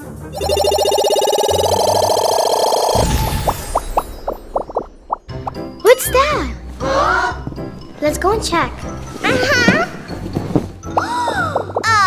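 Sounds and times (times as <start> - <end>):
toy washing machine drum spinning: 0.4 - 3.0
warbling electronic tone: 0.4 - 5.3.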